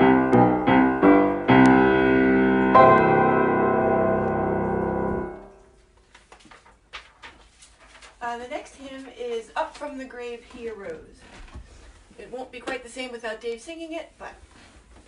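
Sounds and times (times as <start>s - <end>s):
grand piano playing hymn chords: 0.0s - 5.8s
faint small clicks and rustles: 6.0s - 12.0s.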